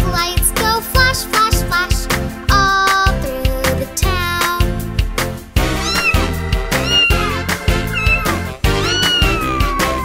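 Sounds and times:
upbeat children's music: 0.0s - 10.0s
cartoon cat meowing: 5.8s - 10.0s.

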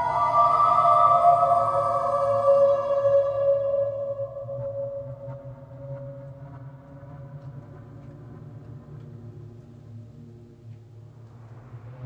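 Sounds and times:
low ambient music drone: 0.0s - 12.0s.

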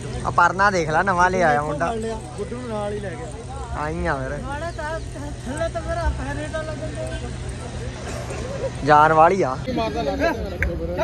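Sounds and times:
background voices talking: 0.0s - 11.0s.

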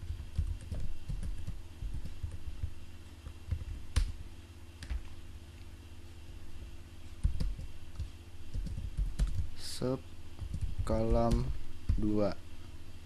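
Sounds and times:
computer keyboard typing: 0.0s - 2.7s, 3.3s - 4.2s, 7.2s - 9.5s, 10.4s - 12.2s.

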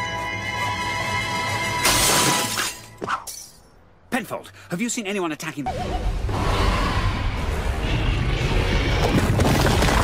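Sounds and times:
cartoon glass shattering: 1.8s - 3.6s.

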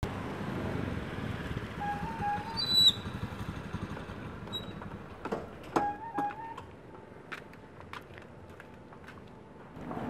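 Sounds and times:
small motorcycle engine running: 1.2s - 5.0s.

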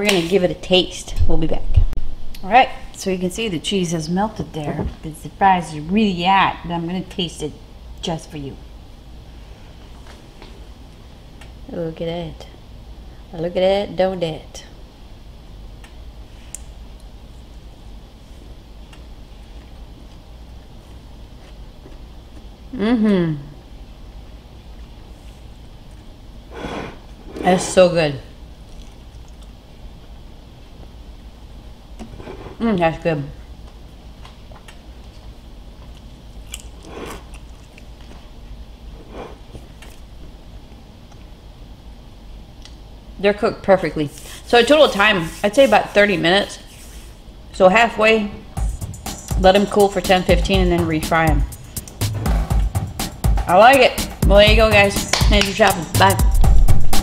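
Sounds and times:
low room hum: 0.0s - 57.0s
crispy chewing clicks: 28.6s - 29.6s, 35.8s - 38.2s.

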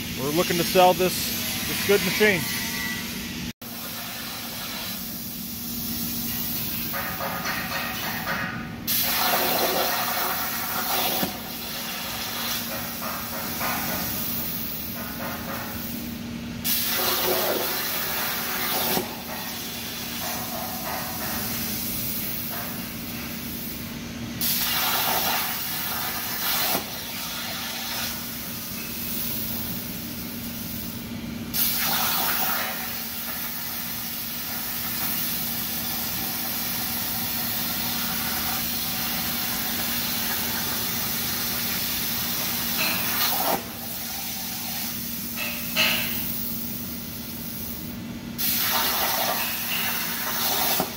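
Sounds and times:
plasma torch cutting steel hiss: 0.0s - 16.0s, 16.6s - 50.9s.

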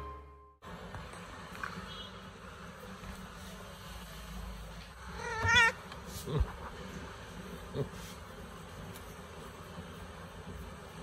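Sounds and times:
cat meowing: 5.1s - 5.8s.

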